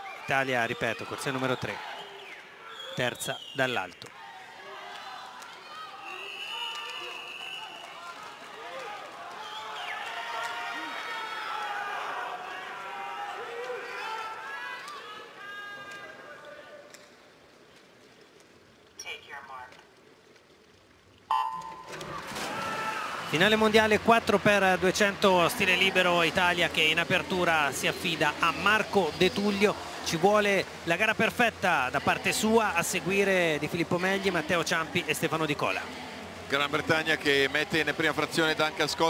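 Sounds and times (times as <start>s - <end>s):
crowd cheering and calling out: 4.0s - 17.0s, 21.3s - 39.0s
electronic start signal: 21.3s - 22.0s
swimmers diving into water: 21.3s - 38.4s.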